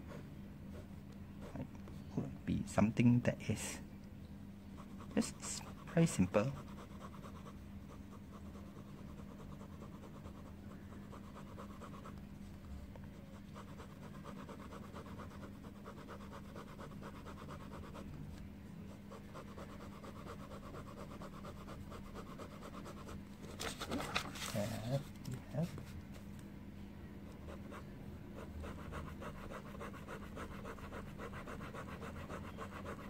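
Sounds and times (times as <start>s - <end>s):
low steady hum: 0.0s - 33.0s
pen scratching on paper: 4.8s - 12.2s, 13.2s - 18.1s, 19.1s - 24.0s, 27.5s - 33.0s
paper rustling: 23.4s - 26.3s.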